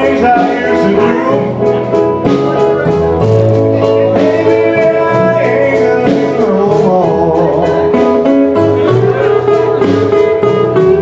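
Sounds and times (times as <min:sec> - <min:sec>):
bending electric guitar notes: 0:00.0 - 0:11.0
live blues band playing: 0:00.0 - 0:11.0.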